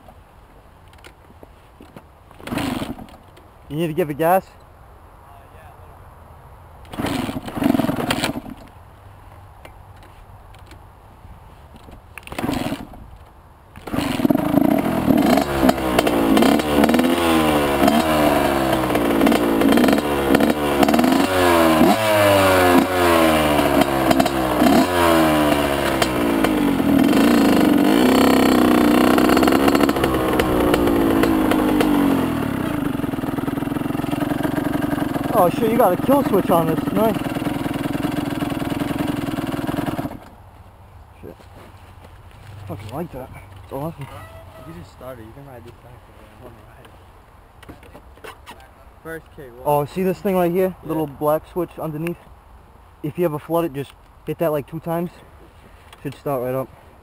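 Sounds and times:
motorcycle engine revving: 2.4 - 3.1, 6.9 - 8.6, 12.3 - 13.0, 13.8 - 40.3
motorcycle engine kick-started: 6.9 - 8.7, 13.8 - 22.9, 25.5 - 40.3.

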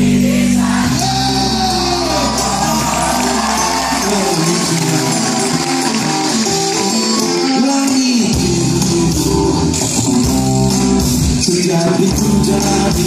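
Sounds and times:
live band music: 0.0 - 13.0.

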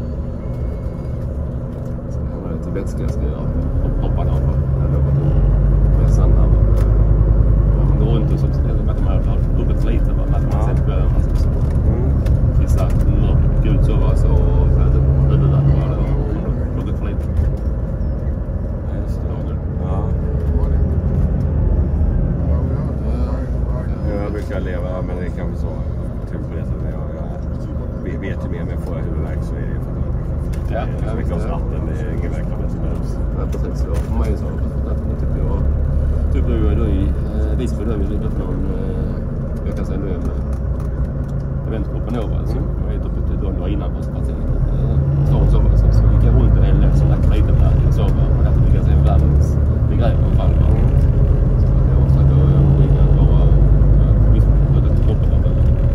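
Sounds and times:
bus engine: 0.0 - 55.9
road noise: 0.0 - 55.9.

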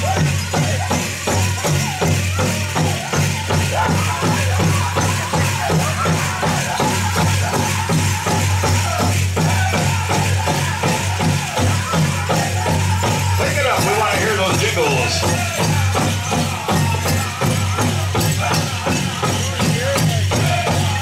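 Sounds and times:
drum group singing: 0.0 - 21.0
metal cones jingling: 0.0 - 21.0
steady drumbeat: 0.0 - 21.0.

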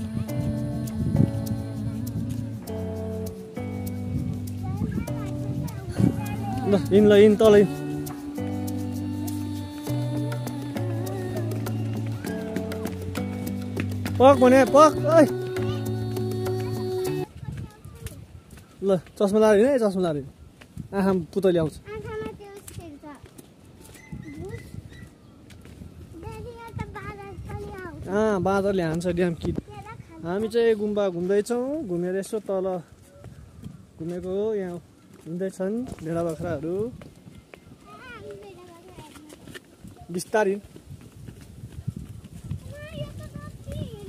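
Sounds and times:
footsteps on concrete steps: 0.0 - 44.0
faint child's voice: 4.6 - 7.0, 15.4 - 18.6, 21.8 - 25.1, 26.1 - 28.1, 37.7 - 40.1, 42.5 - 44.0.

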